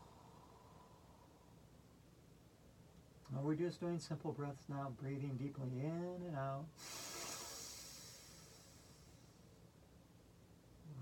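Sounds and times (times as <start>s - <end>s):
person breathing out deeply: 6.8s - 9.2s.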